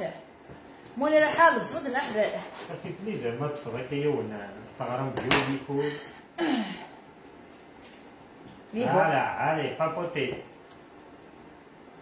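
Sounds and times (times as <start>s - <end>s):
woman speaking: 0.0s - 0.3s, 1.0s - 2.6s.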